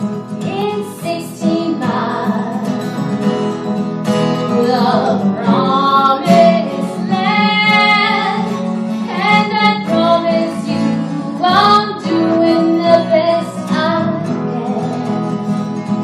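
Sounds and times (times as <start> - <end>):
acoustic guitar: 0.0 - 16.0
woman singing: 0.4 - 3.0, 4.4 - 15.4.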